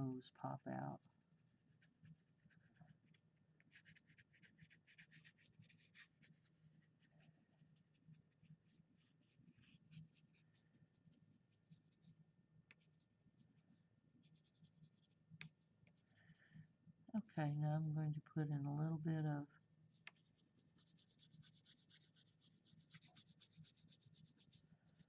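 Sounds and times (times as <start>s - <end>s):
crayon scratching on paper: 1.7s - 15.7s, 19.9s - 25.0s.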